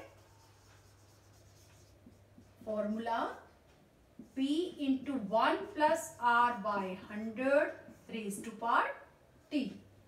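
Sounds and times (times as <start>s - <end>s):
marker scratching on whiteboard: 0.0s - 9.1s.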